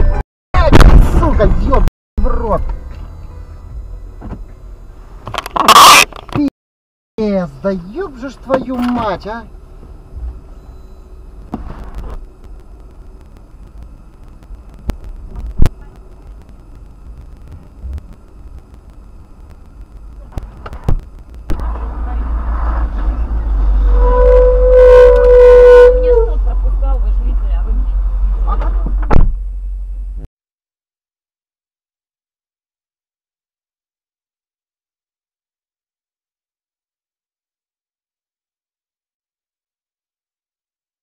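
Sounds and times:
car horn tone: 5.6s - 6.1s, 23.8s - 26.5s
car rumble from inside cabin: 7.5s - 30.3s.

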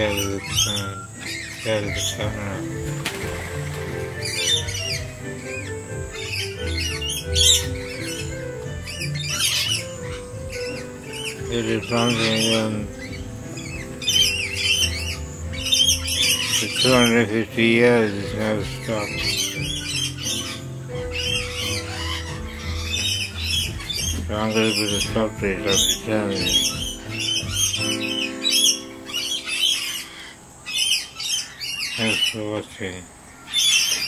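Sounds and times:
lorikeets screeching: 0.0s - 34.0s
music with sustained low notes: 0.0s - 34.0s.

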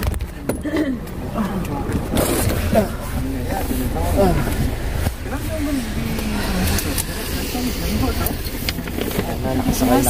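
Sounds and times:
vehicle engine and road noise: 0.0s - 10.0s
people talking: 0.6s - 10.0s.

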